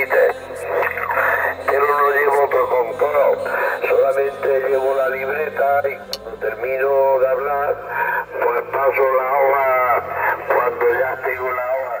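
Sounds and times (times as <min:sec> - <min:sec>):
person speaking over radio speaker: 0:00.0 - 0:12.0
steady low hum: 0:00.0 - 0:12.0.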